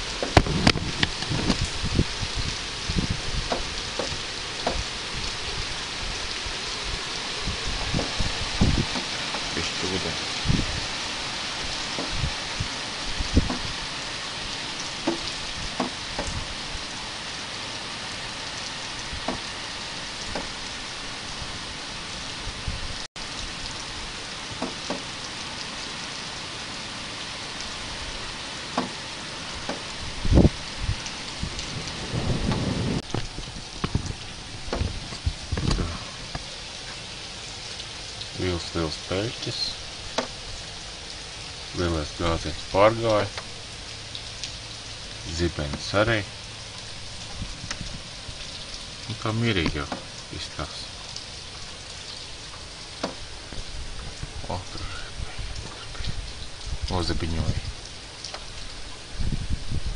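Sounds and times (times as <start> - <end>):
thunder rumble: 0.0 - 14.0, 29.6 - 36.6
steady rain hiss: 0.0 - 59.9.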